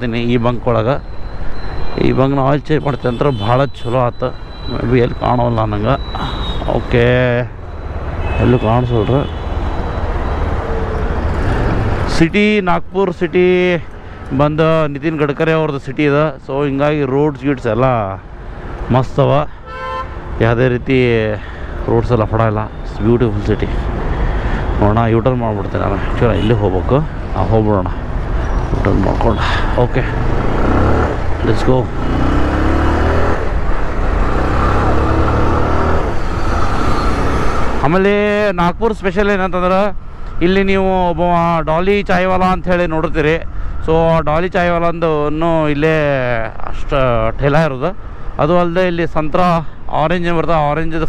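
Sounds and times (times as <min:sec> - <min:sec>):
road and wind rumble: 0:00.0 - 0:51.0
motorcycle engine accelerating: 0:30.1 - 0:37.3.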